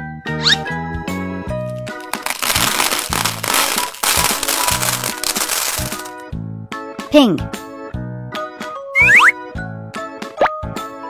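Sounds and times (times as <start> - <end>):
children's background music: 0.0 - 11.0
small balls pouring into glass: 1.9 - 6.1.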